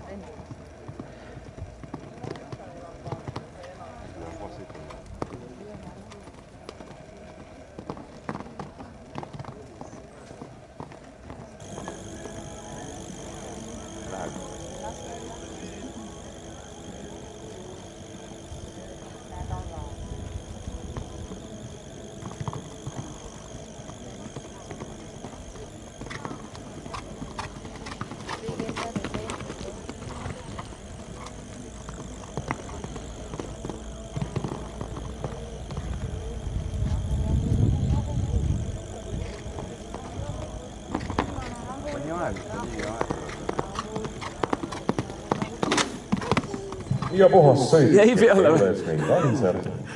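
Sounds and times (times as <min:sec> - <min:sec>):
spectators chattering: 0:00.0 - 0:49.9
faint high-pitched tone: 0:11.6 - 0:47.6.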